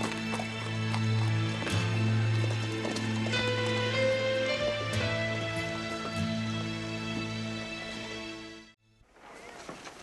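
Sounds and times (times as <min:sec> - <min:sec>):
horse hoofbeats on dirt: 0:00.0 - 0:07.4.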